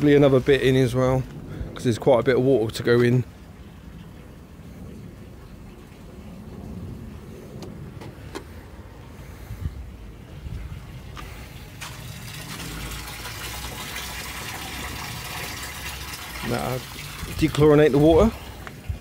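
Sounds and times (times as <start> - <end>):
water from hose splashing into tank: 10.8 - 19.0.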